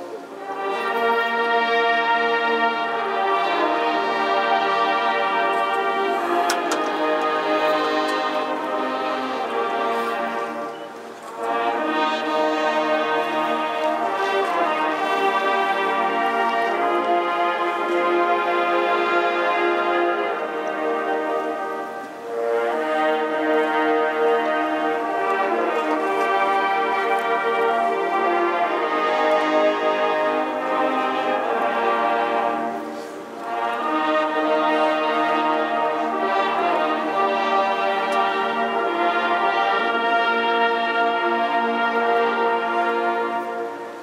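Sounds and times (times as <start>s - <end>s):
brass band playing slow chords: 0.0s - 44.0s.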